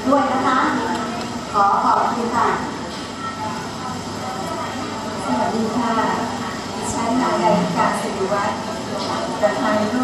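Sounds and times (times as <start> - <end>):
woman speaking over loudspeakers: 0.0 - 2.8, 5.2 - 10.0.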